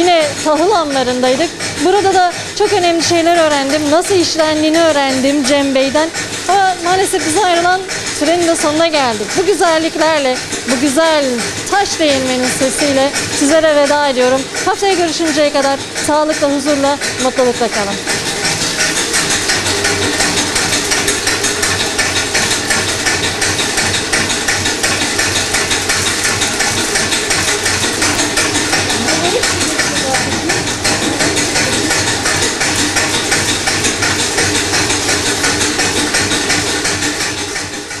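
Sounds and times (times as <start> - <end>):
stone flour mill grinding: 0.0 - 38.0.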